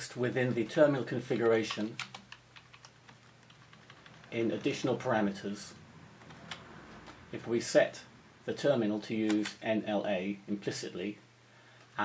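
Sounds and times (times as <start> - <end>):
computer keyboard clicks: 1.7 - 4.4.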